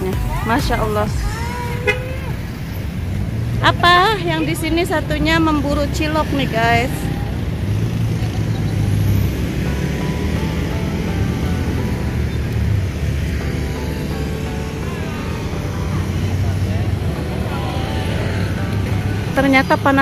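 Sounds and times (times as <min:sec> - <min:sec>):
faint voices: 0:00.0 - 0:02.8, 0:14.1 - 0:20.0
car and motorcycle engines passing: 0:00.0 - 0:20.0.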